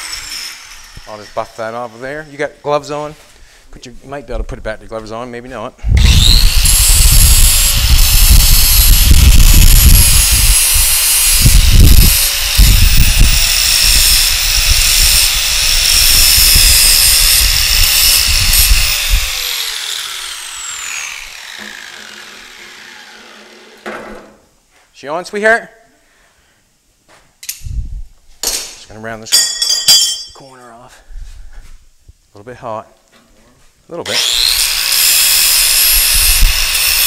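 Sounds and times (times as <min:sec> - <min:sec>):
electric grinder grinding steel: 0:00.0 - 0:02.2, 0:06.0 - 0:23.8, 0:34.1 - 0:37.0.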